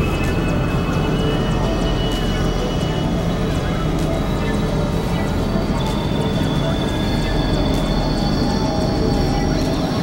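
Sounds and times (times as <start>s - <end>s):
electronic synthesizer drone music: 0.0s - 10.0s.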